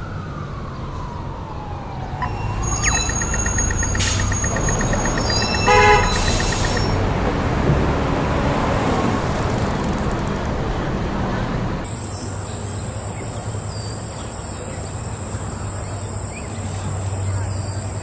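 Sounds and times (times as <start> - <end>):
sliding whistling tone: 2.3 - 7.0
short tones: 2.6 - 7.0
clicks: 2.8 - 7.0.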